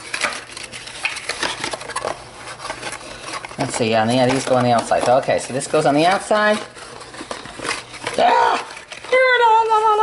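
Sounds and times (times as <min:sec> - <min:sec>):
high-pitched wordless voice: 0:08.2 - 0:10.0.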